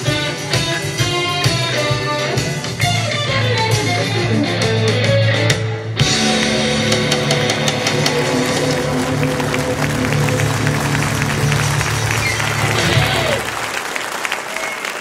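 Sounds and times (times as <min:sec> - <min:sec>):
live rock band with electric guitar: 0:00.0 - 0:13.6
audience applause: 0:06.1 - 0:15.0.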